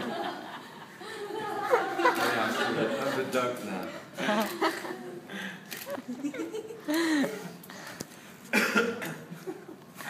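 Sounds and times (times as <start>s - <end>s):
person coughing: 8.5s - 9.3s.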